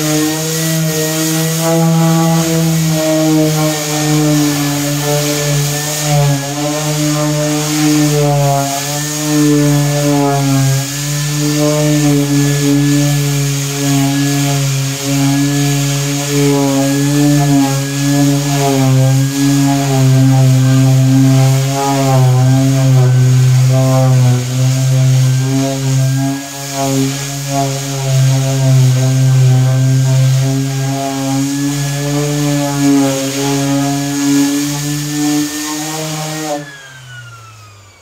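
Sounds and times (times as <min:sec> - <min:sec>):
electric sander whining: 0:00.0 - 0:38.0.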